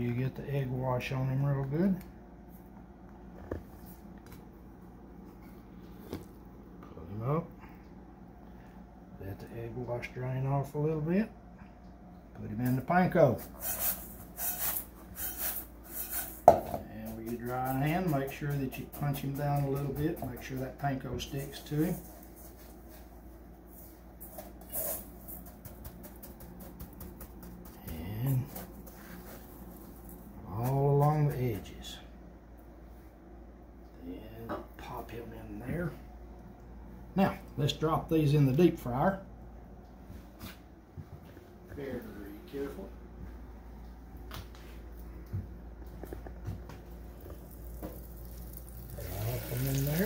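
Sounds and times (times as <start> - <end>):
low steady hum: 0.0 - 50.0
dry breadcrumbs crackling: 47.2 - 50.0.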